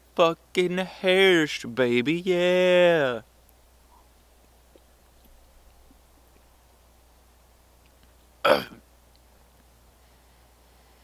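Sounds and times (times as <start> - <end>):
man burping: 8.4 - 8.8.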